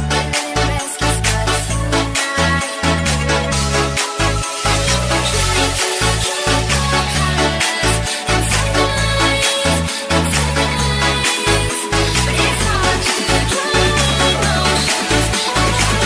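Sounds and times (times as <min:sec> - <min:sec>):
electronic dance music: 0:00.0 - 0:16.0.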